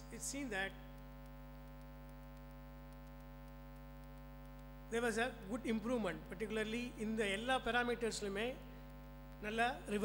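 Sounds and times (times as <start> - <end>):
electrical mains hum: 0.0 - 10.0
man speaking: 4.9 - 8.6, 9.4 - 10.0.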